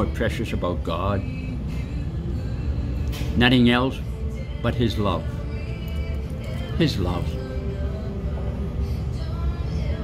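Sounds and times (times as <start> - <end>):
man speaking: 6.7 - 7.4.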